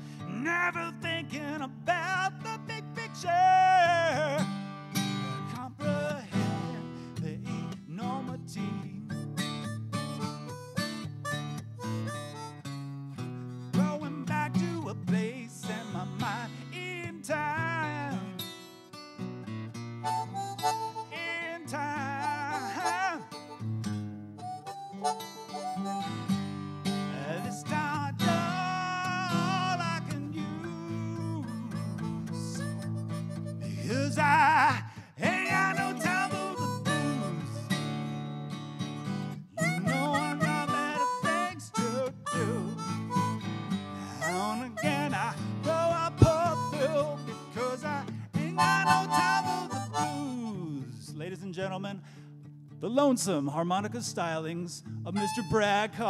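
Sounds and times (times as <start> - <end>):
strummed acoustic guitar: 0.0 - 56.0
harmonica bending notes: 9.1 - 13.4, 20.0 - 50.7, 55.1 - 56.0.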